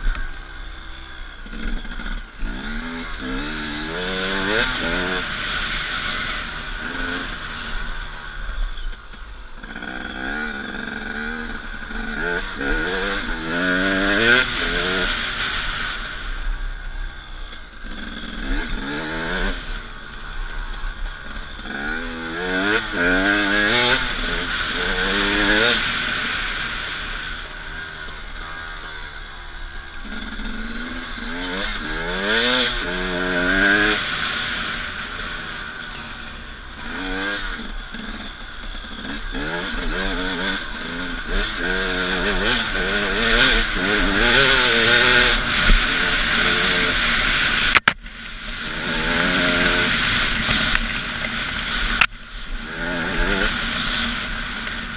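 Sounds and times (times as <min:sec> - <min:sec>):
dirt bike engine revving: 0:00.0 - 0:54.9.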